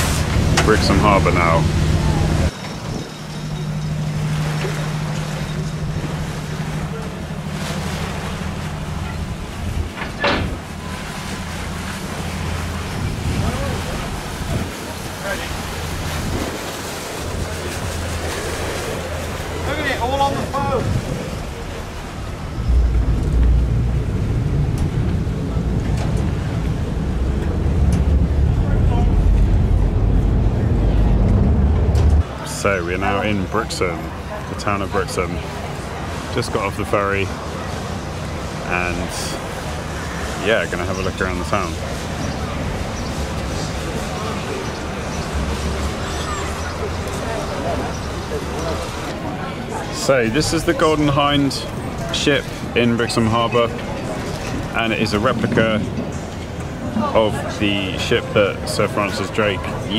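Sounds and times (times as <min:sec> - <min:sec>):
ferry engine humming: 0:00.0 - 0:59.9.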